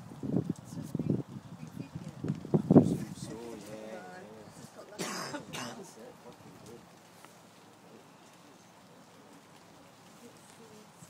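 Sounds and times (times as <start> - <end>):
low murmur of voice: 0.6 - 11.0
person coughing: 5.0 - 5.8.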